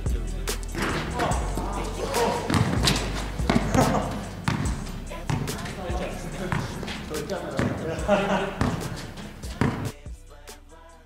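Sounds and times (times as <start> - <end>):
men talking: 0.2 - 10.0
basketball bouncing on asphalt: 2.5 - 10.0.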